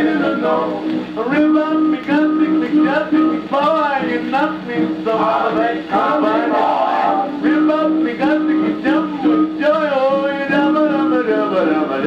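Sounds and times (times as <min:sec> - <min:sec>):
man singing: 0:00.0 - 0:12.0
swing big band record: 0:00.0 - 0:12.0.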